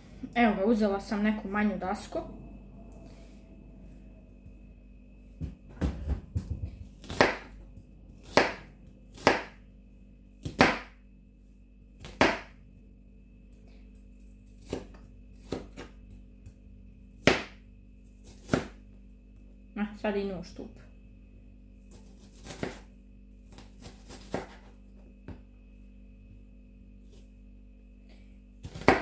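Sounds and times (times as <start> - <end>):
faint steady hum: 0.0 - 29.0
knife chopping on cutting board: 5.8 - 7.5, 8.2 - 9.6, 10.4 - 11.0, 12.0 - 12.5, 17.2 - 17.6, 22.3 - 22.8, 23.5 - 24.7, 28.6 - 29.0.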